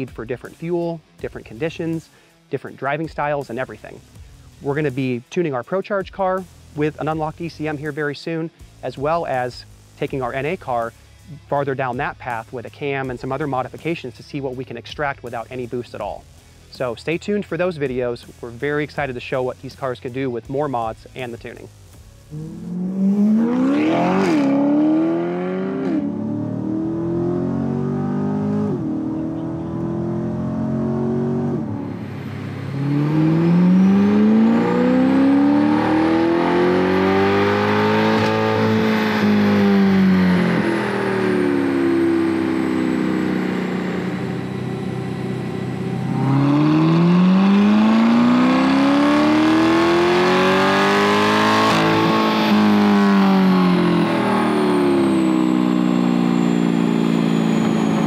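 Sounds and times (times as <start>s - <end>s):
car engine revving: 21.9s - 58.0s
thin high whine: 38.1s - 47.6s, 53.4s - 58.0s.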